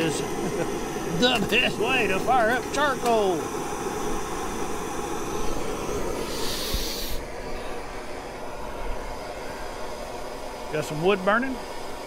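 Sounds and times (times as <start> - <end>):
sharp hiss: 0.0 - 7.3
gas torch flame rumbling: 0.0 - 12.0.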